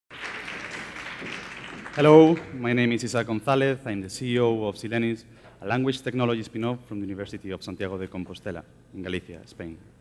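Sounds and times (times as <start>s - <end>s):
audience applause: 0.1s - 2.6s.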